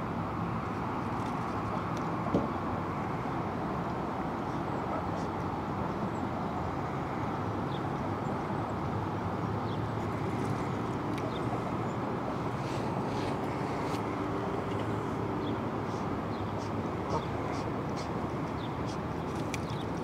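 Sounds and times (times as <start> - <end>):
outdoor rumble and hiss: 0.0 - 20.0.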